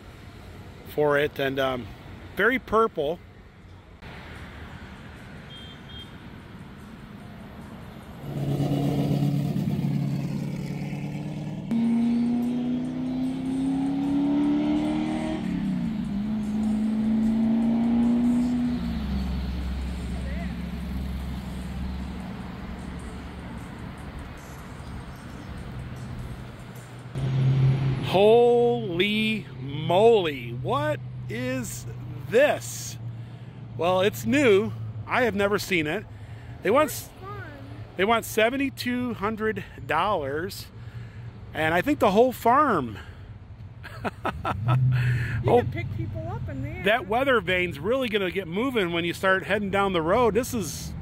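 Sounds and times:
car engine driving past: 0:27.2 - 0:28.2.

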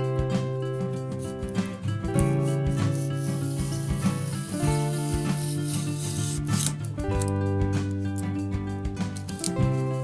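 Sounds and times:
background music with sustained notes: 0:00.0 - 0:10.0
adhesive tape rubbed onto foam: 0:02.6 - 0:06.8.

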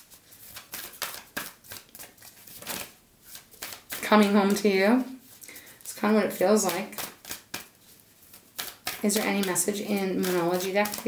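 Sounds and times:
cards being shuffled by hand: 0:00.0 - 0:11.0.

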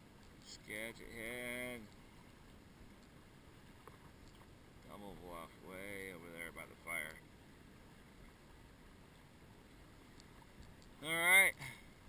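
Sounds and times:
faint steady hiss: 0:00.0 - 0:12.0.

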